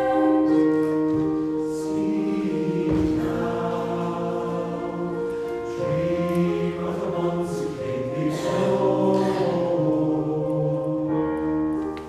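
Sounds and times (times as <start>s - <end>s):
mixed choir singing in harmony: 0.0s - 11.9s.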